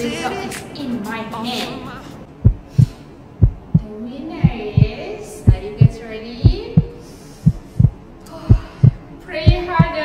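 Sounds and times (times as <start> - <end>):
heartbeat thumps: 2.4 - 10.0.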